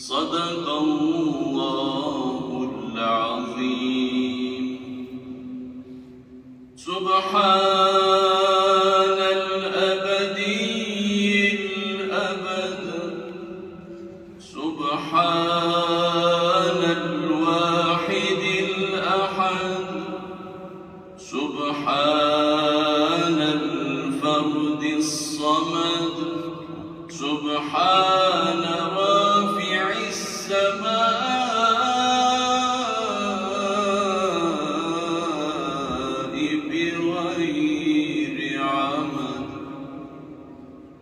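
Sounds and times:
man chanting in reverberant hall: 0.0 - 41.0.

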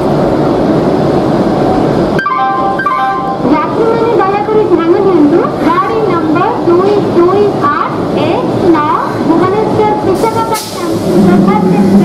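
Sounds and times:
diesel locomotive engines thumping: 0.0 - 12.0.

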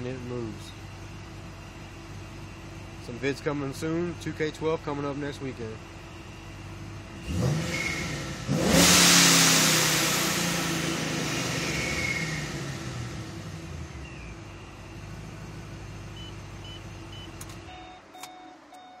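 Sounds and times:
car engine revving and idling: 0.0 - 19.0.

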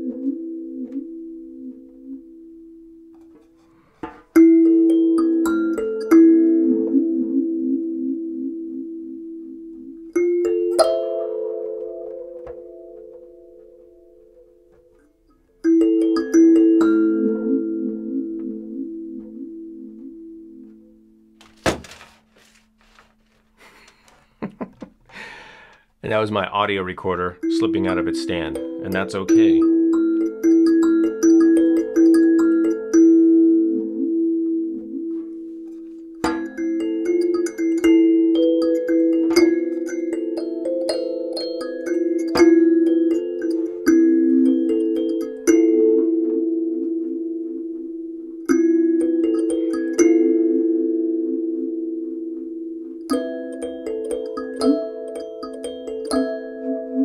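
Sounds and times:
kalimba notes ringing: 4.3 - 21.4, 27.2 - 57.0
rustling: 20.7 - 24.5
recorder falling thunk: 21.4 - 22.2
kalimba note: 27.4 - 35.4.

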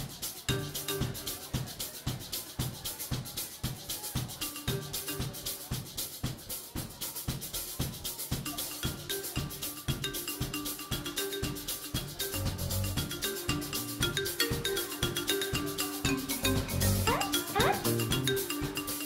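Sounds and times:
live rock band playing: 17.1 - 18.6.

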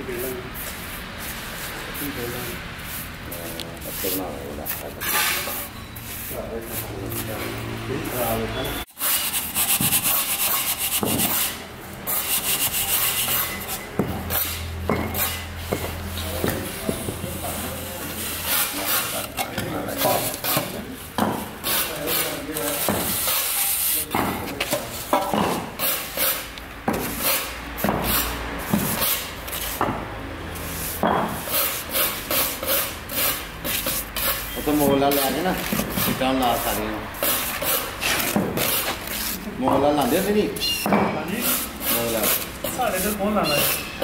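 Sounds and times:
trowel scraping cement plaster: 9.0 - 14.6, 18.1 - 21.0, 21.6 - 24.8, 30.7 - 40.4, 41.3 - 44.0.

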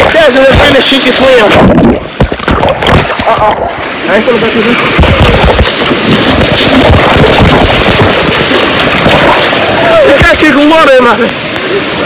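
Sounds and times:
water rushing and splashing: 0.0 - 12.0
crackling knocks: 1.5 - 3.6, 4.8 - 9.6.

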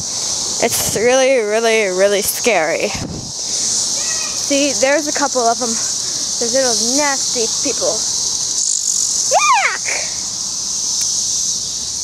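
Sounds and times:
cicadas buzzing: 0.0 - 12.0.

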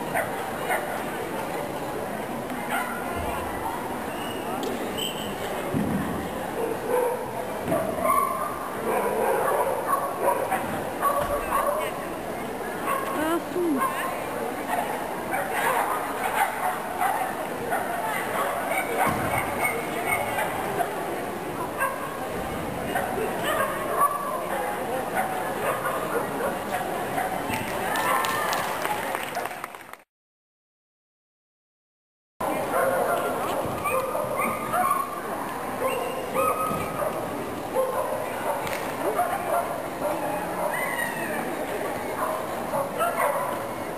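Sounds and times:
murmur of people talking: 0.0 - 29.9, 32.4 - 43.9
dog barking: 6.6 - 11.9, 14.7 - 20.9, 32.7 - 35.2, 42.2 - 43.6
person's voice: 13.2 - 13.9
dogs barking and yipping: 42.2 - 43.6.

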